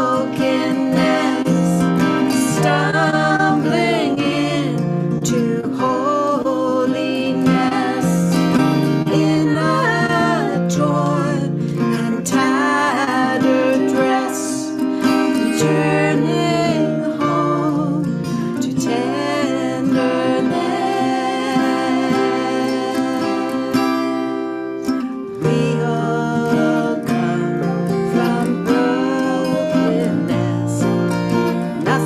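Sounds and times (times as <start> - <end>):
acoustic guitars: 0.0 - 32.0
woman singing harmony: 0.0 - 32.0
woman singing lead vocal: 0.0 - 32.0.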